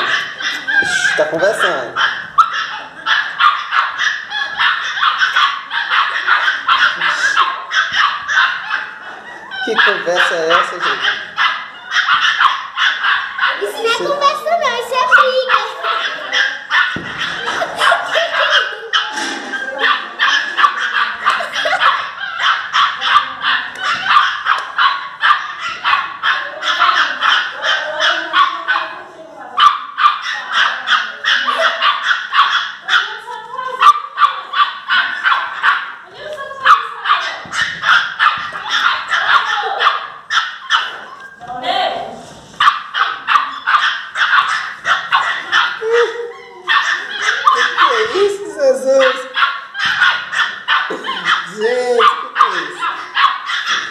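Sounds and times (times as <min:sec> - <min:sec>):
dogs barking and yapping: 0:00.0 - 0:53.9.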